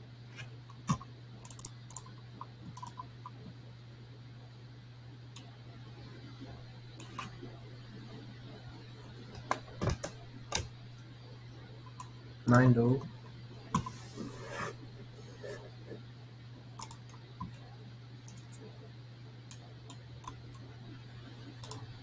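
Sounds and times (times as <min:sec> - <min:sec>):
low electrical hum: 0:00.0 - 0:22.0
sharp computer clicks: 0:00.9 - 0:03.4, 0:16.8 - 0:17.2.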